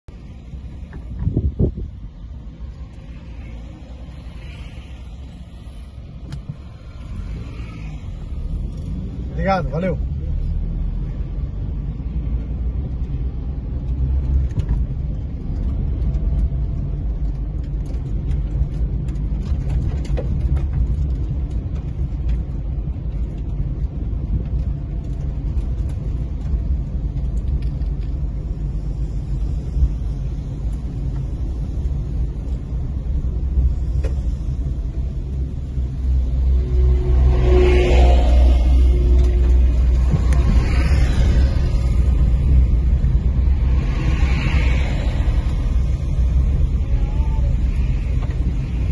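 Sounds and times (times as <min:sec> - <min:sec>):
car engine and tyre rumble: 0:00.0 - 0:48.9.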